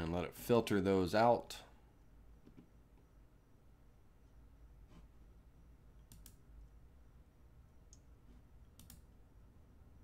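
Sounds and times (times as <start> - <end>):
computer mouse clicks: 6.0 - 6.5, 8.7 - 9.1.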